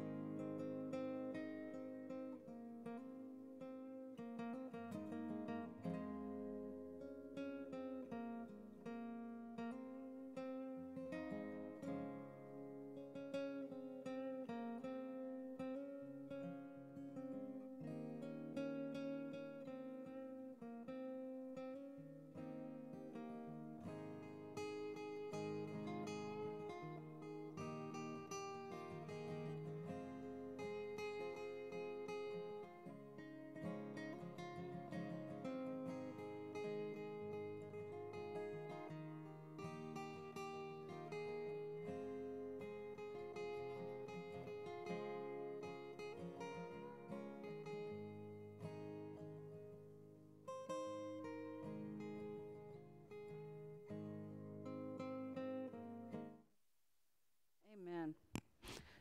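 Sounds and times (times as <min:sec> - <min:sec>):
strummed acoustic guitar chords: 0:00.0 - 0:56.4.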